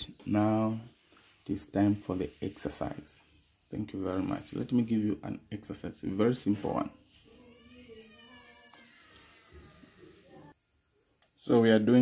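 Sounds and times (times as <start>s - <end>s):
faint falling pitched cry: 7.3s - 10.5s.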